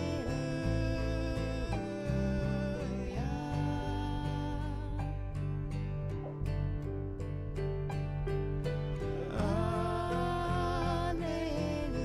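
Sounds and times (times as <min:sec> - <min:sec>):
voices singing: 0:00.0 - 0:05.2, 0:09.2 - 0:12.0.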